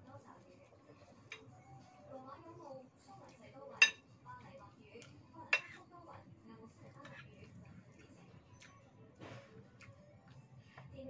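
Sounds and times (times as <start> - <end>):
spoon clinking against ceramic bowl: 1.3 - 1.5, 3.8 - 4.0, 5.5 - 5.8.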